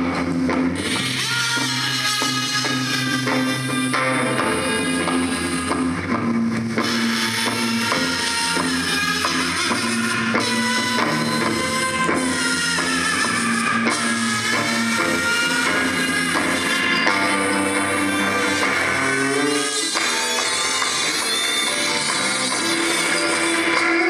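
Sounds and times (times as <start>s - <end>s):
sustained guitar notes: 0.0s - 24.0s.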